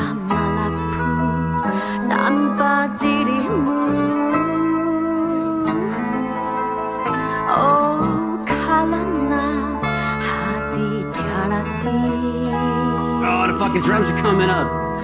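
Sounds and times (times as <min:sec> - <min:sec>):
woman singing: 0:00.0 - 0:14.2
fingerstyle acoustic guitar: 0:00.0 - 0:15.0
bass guitar notes: 0:02.3 - 0:15.0.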